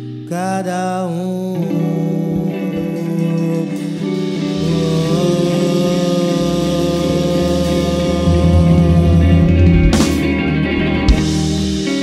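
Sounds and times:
guitar chords: 0.0 - 12.0
bass line: 1.8 - 12.0.

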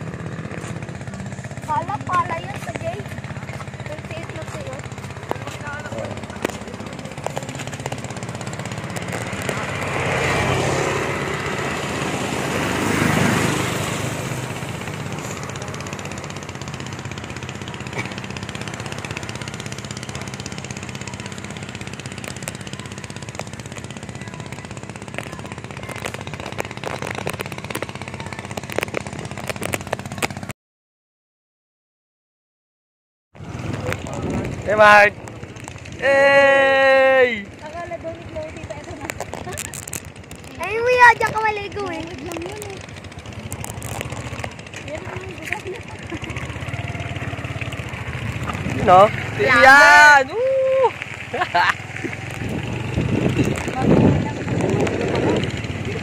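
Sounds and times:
motor vehicle passing: 0.0 - 30.5, 33.4 - 56.0
steady low road hum: 0.0 - 30.6, 33.3 - 56.0.

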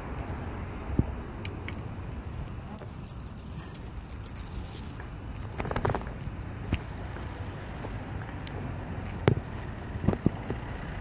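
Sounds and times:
high metallic jingling: 3.0 - 6.5
wind rumble on microphone: 5.3 - 11.0.

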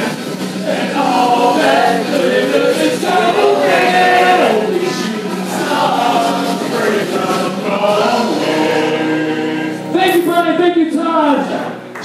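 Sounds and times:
voices singing together: 0.0 - 10.4
backing music: 0.0 - 12.0.

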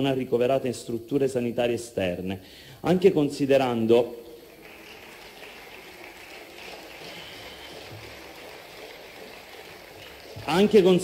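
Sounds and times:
faint hall room hiss: 0.0 - 11.0.

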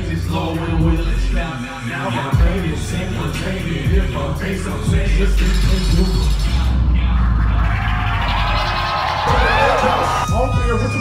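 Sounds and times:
hip-hop beat with heavy bass: 0.0 - 11.0
crowd shouting and cheering: 6.6 - 11.0.

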